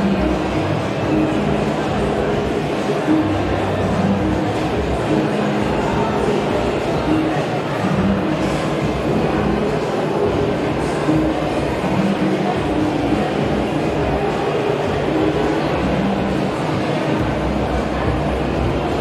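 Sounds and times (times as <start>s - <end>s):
background music: 0.0s - 19.0s
rumble of venue noise: 0.0s - 19.0s.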